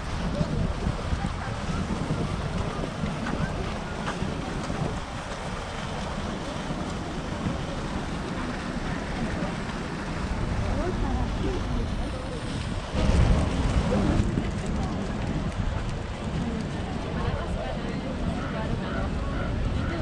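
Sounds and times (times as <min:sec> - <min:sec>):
faint voices: 0:00.0 - 0:20.0
wind buffeting microphone: 0:00.0 - 0:20.0.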